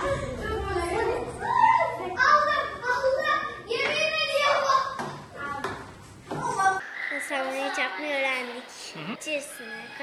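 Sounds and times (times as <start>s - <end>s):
young children's voices: 0.0s - 10.0s.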